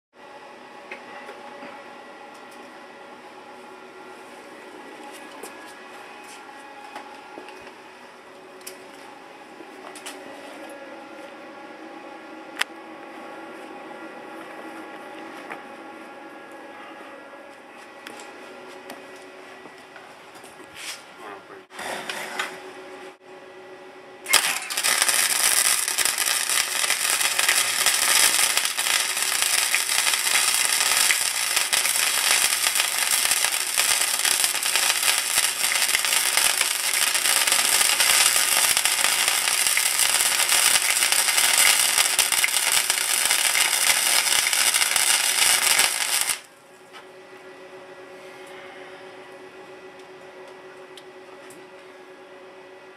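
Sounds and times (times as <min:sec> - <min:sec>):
electric arc welding: 0:24.3 - 0:46.5.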